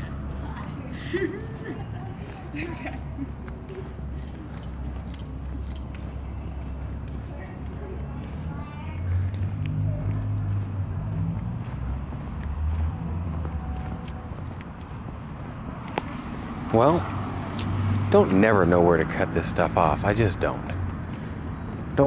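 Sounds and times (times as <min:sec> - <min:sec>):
vehicle engine rumbling: 0:00.0 - 0:22.0
footsteps on pavement: 0:00.1 - 0:22.0.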